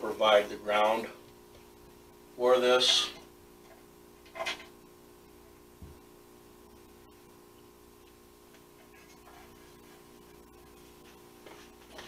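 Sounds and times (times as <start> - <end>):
steady room hum: 0.0 - 12.0.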